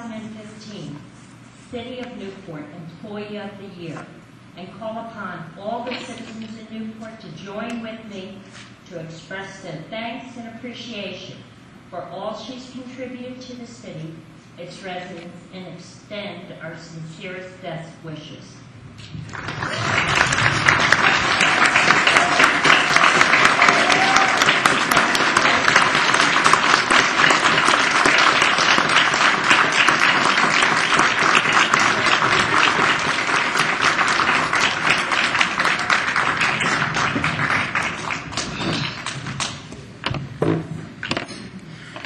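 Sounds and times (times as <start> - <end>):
audience applauding: 19.3 - 39.6.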